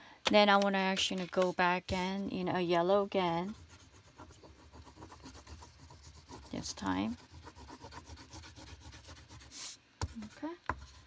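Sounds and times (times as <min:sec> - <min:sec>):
pastel scratching across paper: 0:03.1 - 0:11.0.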